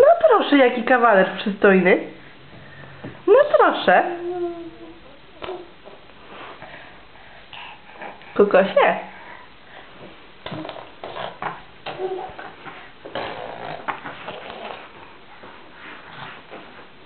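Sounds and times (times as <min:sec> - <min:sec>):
baby vocal sounds: 0:04.0 - 0:06.1, 0:10.4 - 0:15.0.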